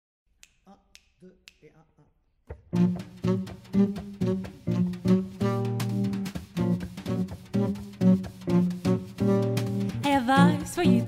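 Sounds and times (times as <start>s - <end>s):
finger snaps: 0.4s - 1.7s.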